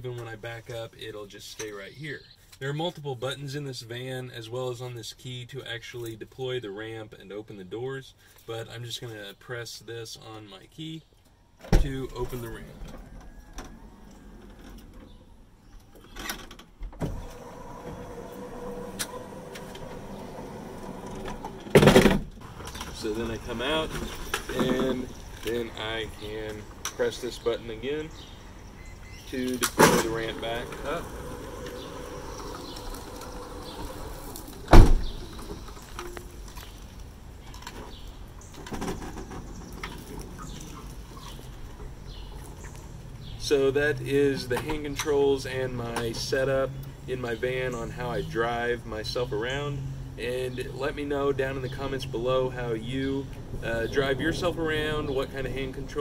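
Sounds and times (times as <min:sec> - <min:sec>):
sliding door running shut: 0:11.7 - 0:15.2, 0:16.2 - 0:25.6, 0:29.3 - 0:35.8
ramp thumping onto pavement: 0:19.8 - 0:25.5, 0:29.6 - 0:36.0
loud mechanical clunk: 0:29.6 - 0:35.5.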